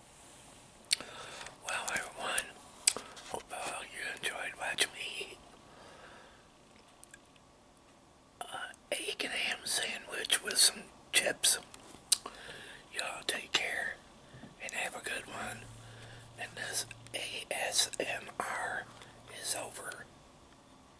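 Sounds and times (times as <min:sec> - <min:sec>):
man whispering: 0:01.6 - 0:05.4, 0:08.4 - 0:12.2, 0:12.9 - 0:14.0, 0:14.6 - 0:15.8, 0:16.4 - 0:20.1.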